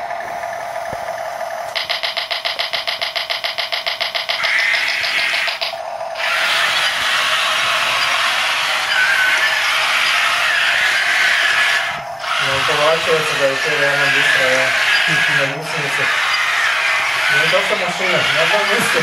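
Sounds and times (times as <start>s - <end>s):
electric motors whirring whine: 0.0s - 19.0s.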